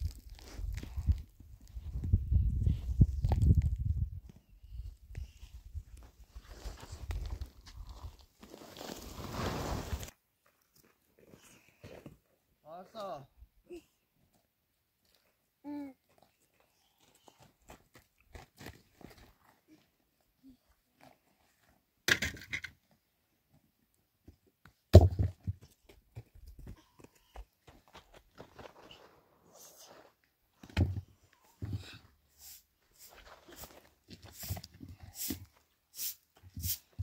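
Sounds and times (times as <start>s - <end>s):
footsteps on stony ground: 17.0s - 19.6s, 25.6s - 29.2s.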